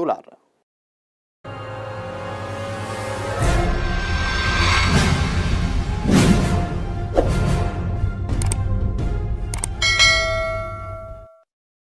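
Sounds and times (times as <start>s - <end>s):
bell-like chime: 9.8s - 11.5s.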